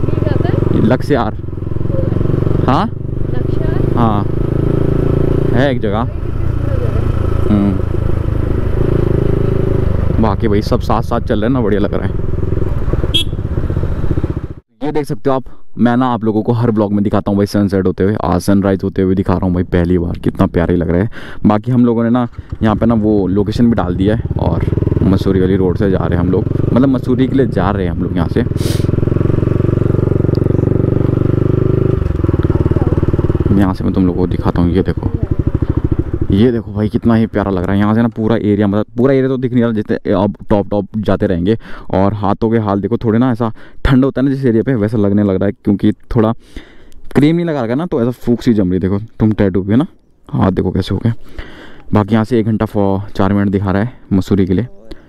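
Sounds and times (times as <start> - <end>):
motorcycle engine running: 0.0 - 14.7, 21.7 - 38.6
short vocal sound: 7.4 - 7.9.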